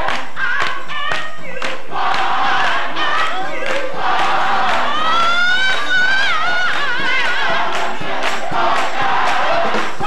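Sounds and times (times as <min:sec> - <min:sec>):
hand claps: 0:00.0 - 0:10.0
many voices singing: 0:00.0 - 0:10.0.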